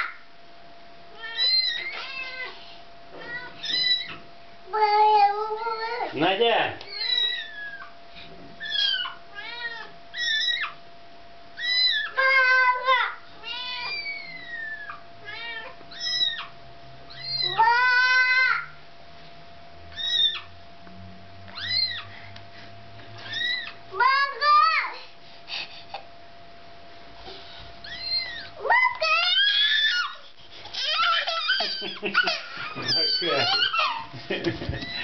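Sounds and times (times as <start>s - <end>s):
faint steady hum: 0.0s - 35.0s
kitten mewing: 3.2s - 4.2s, 6.9s - 7.9s, 8.6s - 10.8s, 11.6s - 12.6s, 13.4s - 16.5s, 17.1s - 18.5s, 19.9s - 20.5s, 21.5s - 22.1s, 27.8s - 34.1s, 34.7s - 35.0s.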